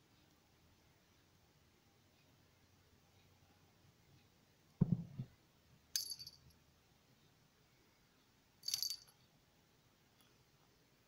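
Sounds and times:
small bell jingling: 6.0s - 6.5s, 8.6s - 9.2s.

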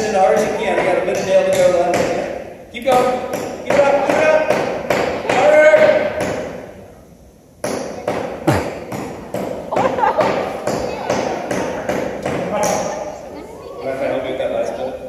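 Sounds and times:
frozen banana hammering a nail: 0.3s - 6.7s, 7.6s - 12.9s.

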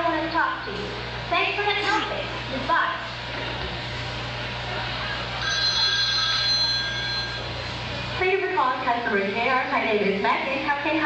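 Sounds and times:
steady low hum: 0.0s - 11.0s
telephone ringing: 5.4s - 7.6s.

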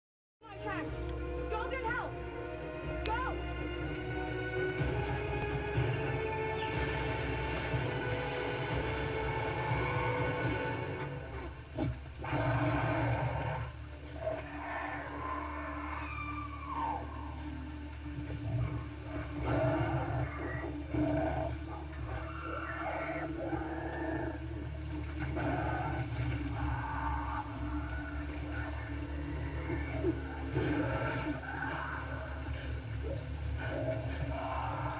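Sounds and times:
background music: 0.4s - 34.9s
gorilla roars and calls: 6.6s - 17.8s, 18.4s - 34.9s.

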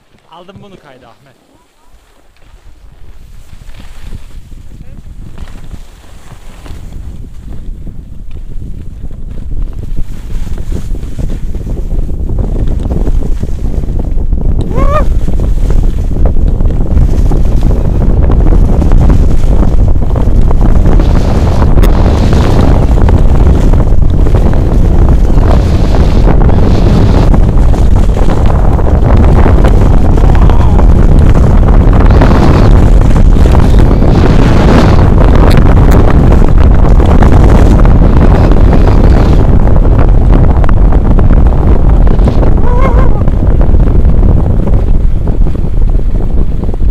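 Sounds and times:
skis scraping over snow: 0.0s - 40.1s
wind buffeting microphone: 0.0s - 46.9s.

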